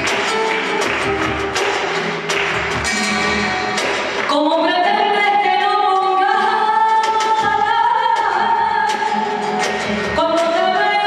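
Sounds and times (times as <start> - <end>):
live band with drums: 0.0 - 4.5, 6.9 - 10.7.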